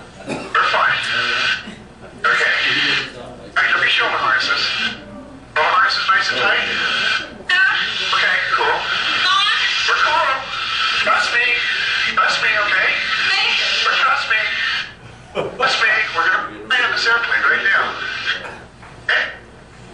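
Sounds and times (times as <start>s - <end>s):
indistinct voices over speakers: 0.0s - 19.6s.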